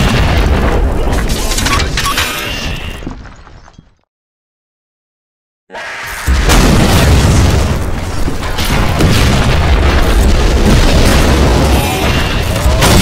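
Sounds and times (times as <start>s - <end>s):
deep booming rumble: 6.3s - 13.0s.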